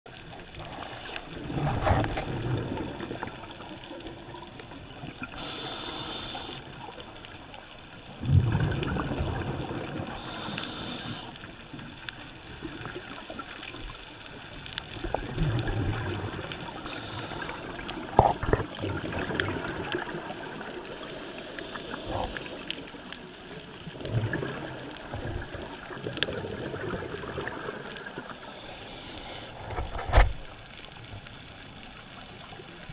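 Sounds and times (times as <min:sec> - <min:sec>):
bubbly exhalations: 0:01.4 - 0:03.4, 0:08.2 - 0:10.9, 0:15.0 - 0:20.6, 0:23.9 - 0:28.3
regulator hissing inhalations: 0:05.4 - 0:06.6, 0:10.2 - 0:11.4, 0:16.8 - 0:17.9, 0:20.6 - 0:22.7, 0:28.3 - 0:29.6.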